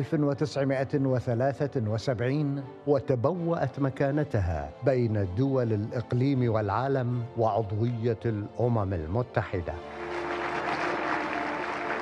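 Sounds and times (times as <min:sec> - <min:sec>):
background music: 0:00.0 - 0:12.0
crowd applauding: 0:09.7 - 0:12.0.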